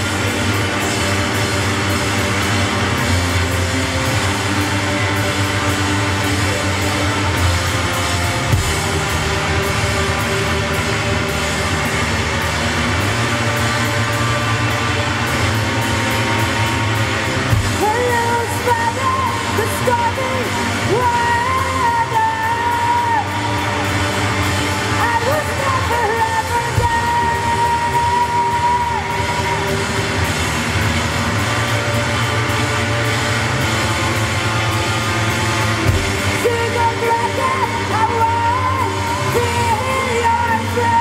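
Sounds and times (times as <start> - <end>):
drum kit: 0.0 - 41.0
electric guitar: 0.0 - 41.0
person singing: 17.4 - 30.2, 36.0 - 41.0.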